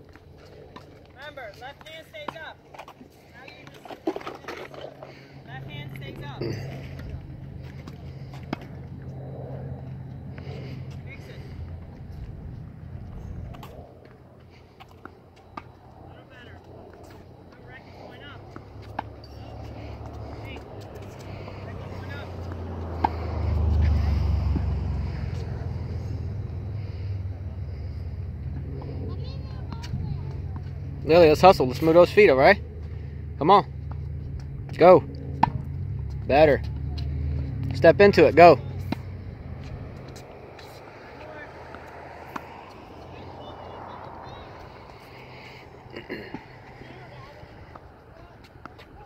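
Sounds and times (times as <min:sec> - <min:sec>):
low steady rumble: 0:00.0 - 0:49.0
tennis ball hit by racket: 0:35.3 - 0:35.7
tennis ball bouncing on hard court: 0:35.3 - 0:36.2.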